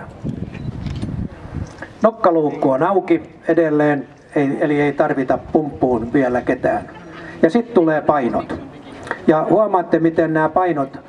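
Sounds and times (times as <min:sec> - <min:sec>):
wind buffeting microphone: 0:00.0 - 0:01.9, 0:05.2 - 0:07.4.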